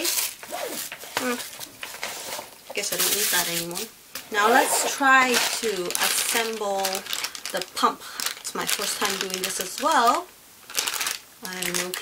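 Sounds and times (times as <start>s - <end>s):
packaging wrapper rustling: 0.0s - 12.0s
woman speaking: 1.2s - 1.4s, 2.7s - 10.3s, 11.4s - 12.0s.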